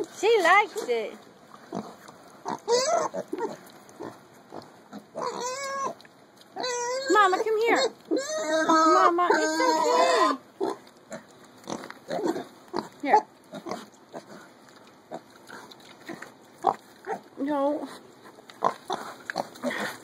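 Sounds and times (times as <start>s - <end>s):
piglets grunting and squeaking: 1.6s - 20.0s.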